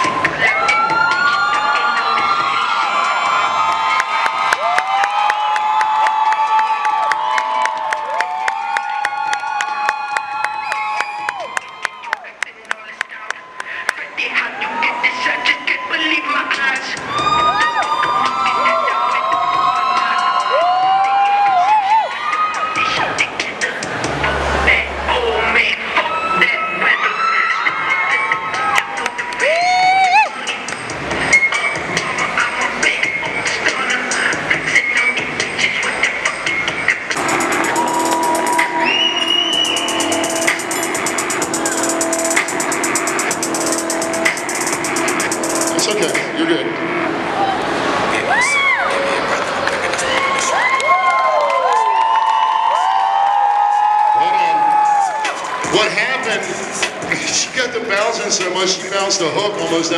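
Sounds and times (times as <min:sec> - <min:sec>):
music: 0:00.0 - 0:12.2, 0:13.1 - 0:47.2, 0:48.6 - 0:59.9
crowd cheering and shouting: 0:00.0 - 0:59.9
crowd chatter: 0:12.0 - 0:20.3, 0:22.2 - 0:29.4, 0:30.3 - 0:50.8, 0:55.1 - 0:59.9.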